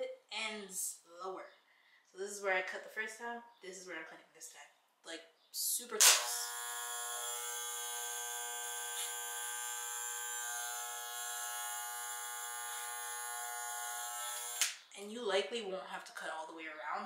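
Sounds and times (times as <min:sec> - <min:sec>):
electric hair clippers running: 0:06.0 - 0:14.8.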